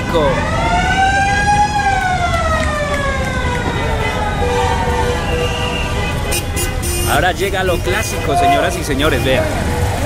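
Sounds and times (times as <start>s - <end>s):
siren wailing: 0.3s - 6.0s.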